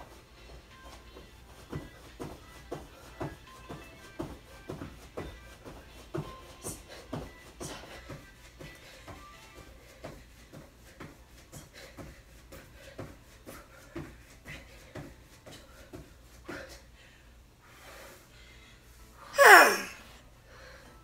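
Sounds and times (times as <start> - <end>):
faint music: 0.0 - 21.0
sneakers thumping on exercise mat: 1.2 - 16.7.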